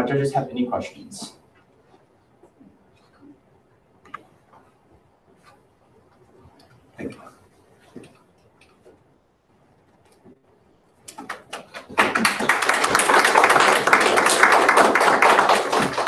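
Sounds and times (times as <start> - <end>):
audience applauding: 11.1 - 16.0.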